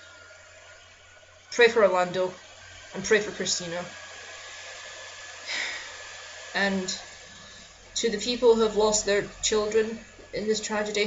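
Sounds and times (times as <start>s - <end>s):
steady background hiss: 0.0s - 11.0s
short breath: 5.5s - 6.0s, 7.3s - 7.8s.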